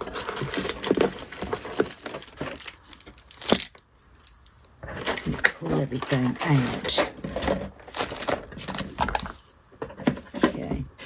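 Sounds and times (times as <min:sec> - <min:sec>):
packaging rustling and crinkling: 0:00.0 - 0:03.8, 0:04.8 - 0:11.0.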